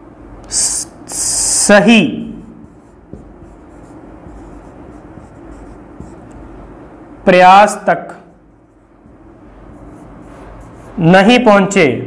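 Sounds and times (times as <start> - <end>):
marker scratching on whiteboard: 2.3 - 6.6, 8.3 - 11.5.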